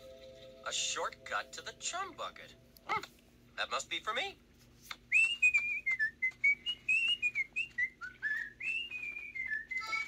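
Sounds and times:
person whistling a tune: 5.1 - 10.0.

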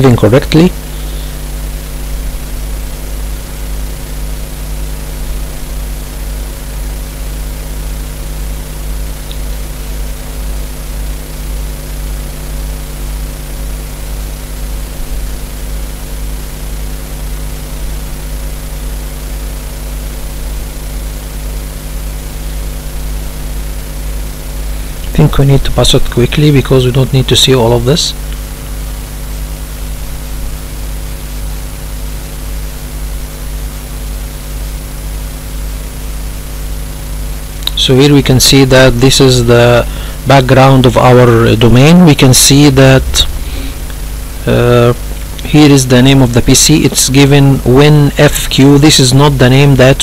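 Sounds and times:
low hum with hiss: 0.0 - 50.0.

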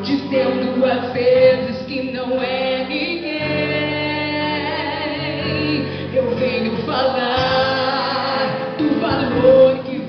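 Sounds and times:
woman singing gospel song: 0.0 - 10.0.

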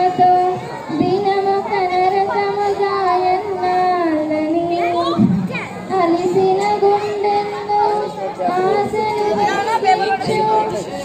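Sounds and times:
woman singing into a microphone: 0.0 - 5.0, 5.9 - 11.0.

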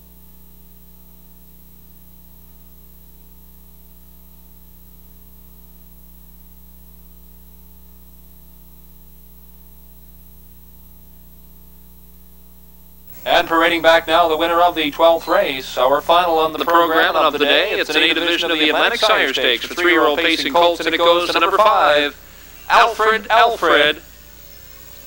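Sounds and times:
electrical mains hum: 0.0 - 25.0
constant hiss: 8.8 - 25.0.

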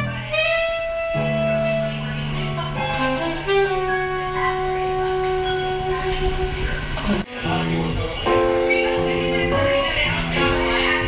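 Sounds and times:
saxophone long note: 0.0 - 10.6
low accompaniment: 0.0 - 11.0
music with held notes: 0.0 - 11.0.

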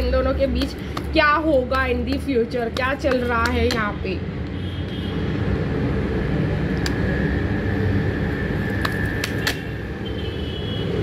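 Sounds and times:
low rumble of vehicle: 0.0 - 11.0.

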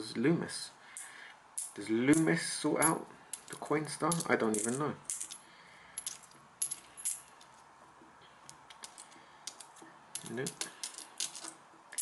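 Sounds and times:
coins clinking in hand: 4.1 - 5.4, 6.0 - 7.4, 8.7 - 12.0.

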